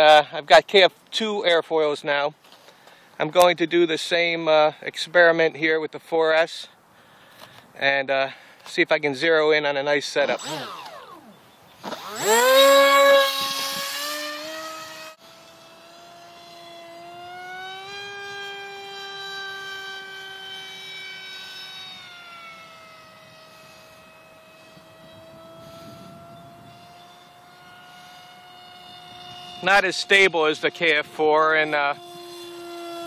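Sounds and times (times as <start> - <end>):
rc jet motor whining: 10.0 - 33.0.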